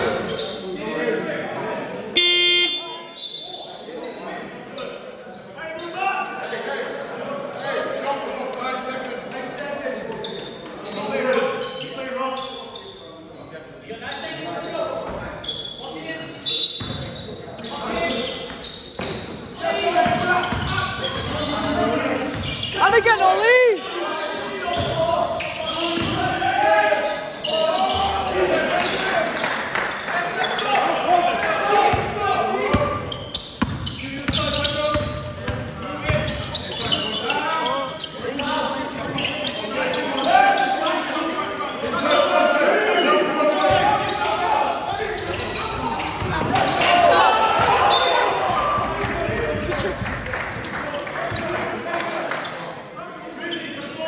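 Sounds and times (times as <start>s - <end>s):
players shouting: 19.7s - 29.4s, 39.2s - 50.0s
basketball bouncing: 33.6s - 36.4s.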